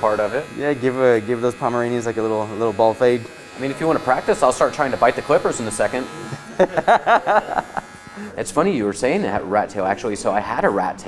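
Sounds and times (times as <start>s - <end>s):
electric hair clippers buzzing: 0.0s - 8.6s
man laughing: 6.3s - 8.4s.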